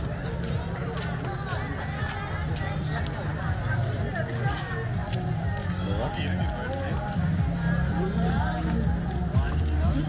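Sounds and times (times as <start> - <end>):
background music with bass line: 0.0 - 10.0
chatter of passers-by: 0.0 - 10.0.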